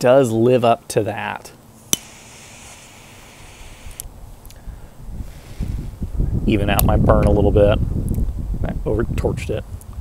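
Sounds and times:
torch lighter hissing: 1.8s - 4.6s, 5.2s - 6.0s
wind rumble on microphone: 3.5s - 10.0s.

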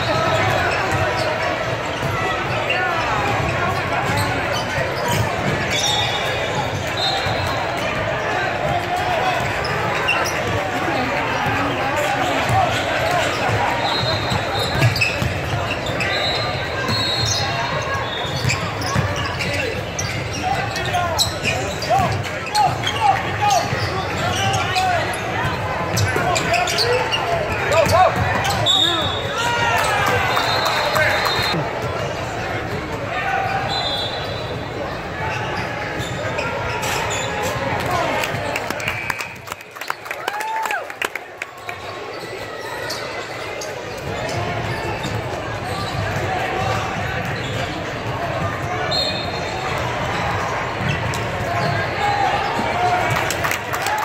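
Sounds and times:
sneakers squeaking on floor: 0.0s - 39.4s, 41.6s - 53.2s
voices of players and spectators: 0.0s - 54.0s.

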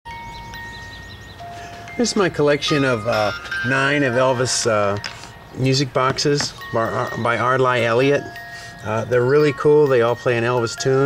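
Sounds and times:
music box notes: 0.1s - 11.0s.

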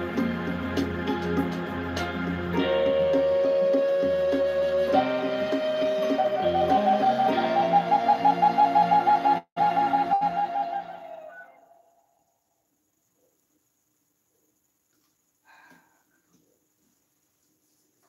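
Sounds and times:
soft sustained backing accompaniment: 0.0s - 12.3s
wooden flute melody: 2.5s - 11.9s.

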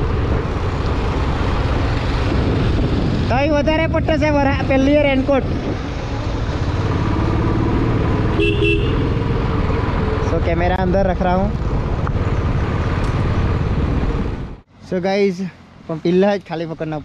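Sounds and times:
motorcycle engine and road rumble: 0.0s - 17.0s
horn toot: 8.3s - 9.2s.

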